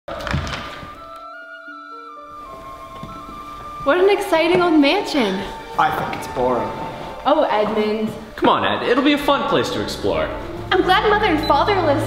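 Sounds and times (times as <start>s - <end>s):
sustained held music notes: 0.9s - 12.0s.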